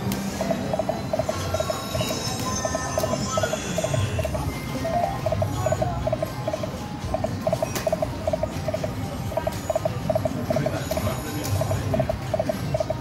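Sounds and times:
casino crowd hubbub: 0:00.0 - 0:13.0
slot machine beeps: 0:00.0 - 0:13.0.

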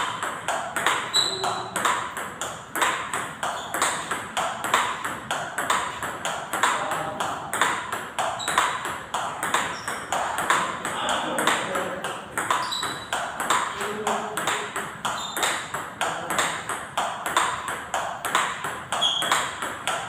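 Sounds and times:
balls bouncing on table: 0:00.0 - 0:20.0
ping-pong balls clicking on paddles: 0:00.0 - 0:20.0.

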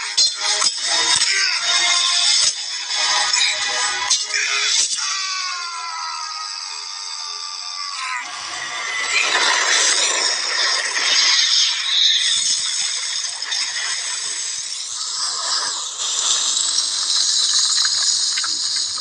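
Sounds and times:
rushing hiss and rattle: 0:08.7 - 0:19.0.

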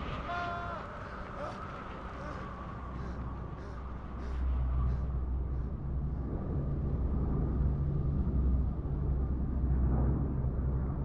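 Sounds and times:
turboprop plane rumble: 0:00.0 - 0:11.0.

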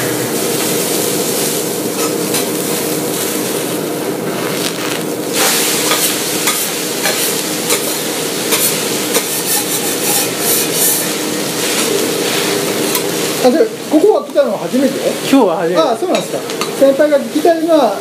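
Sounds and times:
food sizzling on a griddle: 0:00.0 - 0:18.0
steady hum: 0:00.0 - 0:18.0.

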